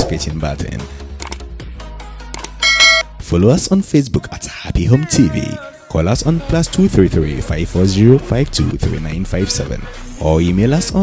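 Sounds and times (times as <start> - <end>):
background music: 0.0 - 11.0
short clicks: 1.2 - 1.4, 2.3 - 3.0
bell-like chime: 2.6 - 3.0.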